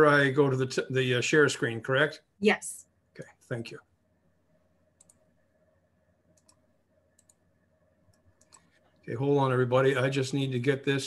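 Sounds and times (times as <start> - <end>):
faint steady hum: 0.0 - 11.0
computer mouse clicks: 5.0 - 5.3, 6.3 - 7.4, 8.1 - 8.8.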